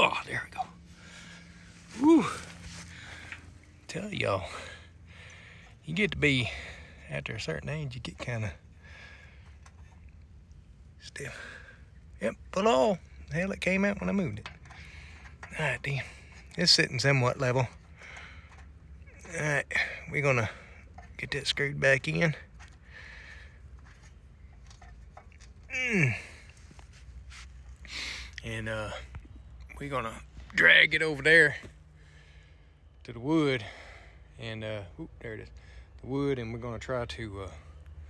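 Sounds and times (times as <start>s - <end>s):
man groaning: 2.0s - 2.5s, 25.7s - 26.4s.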